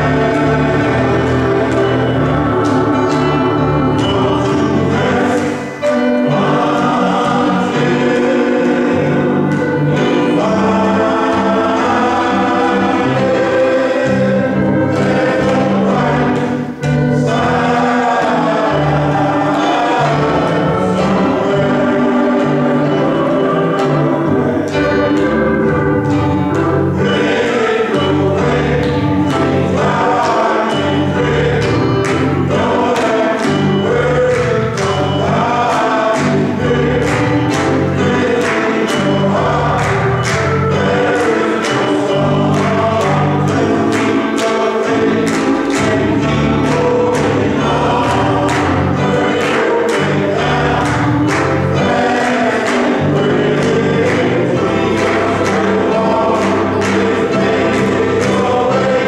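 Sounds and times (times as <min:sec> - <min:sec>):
men's choir singing a hymn: 0:00.0 - 0:59.0.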